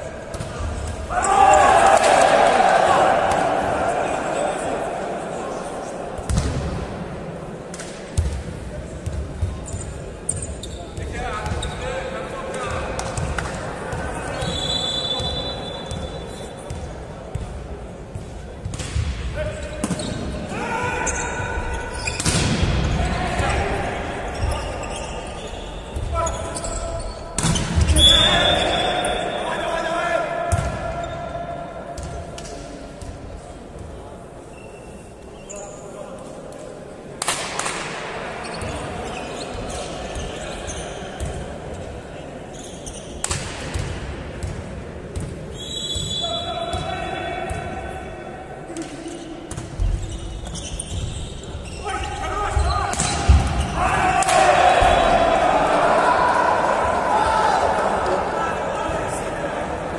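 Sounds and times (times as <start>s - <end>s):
volleyball hits echoing in hall: 0.0s - 34.5s, 36.5s - 59.9s
players and spectators shouting: 0.9s - 6.1s, 20.5s - 22.1s, 27.9s - 31.8s, 51.6s - 59.9s.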